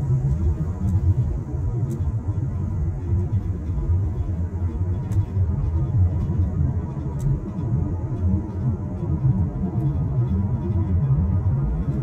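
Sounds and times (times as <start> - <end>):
car driving on paved road: 0.0 - 12.0.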